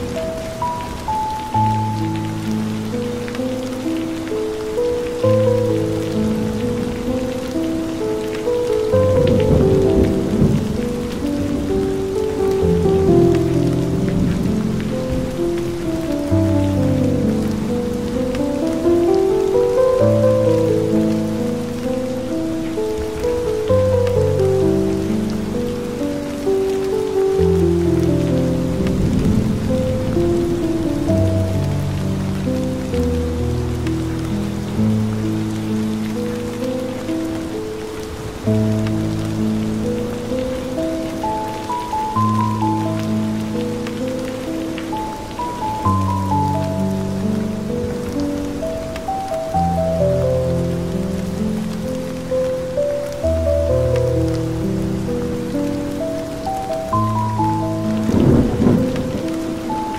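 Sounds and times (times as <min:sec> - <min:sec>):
slow calm ambient music: 0:00.0 - 0:59.9
steady rain: 0:00.0 - 0:59.9.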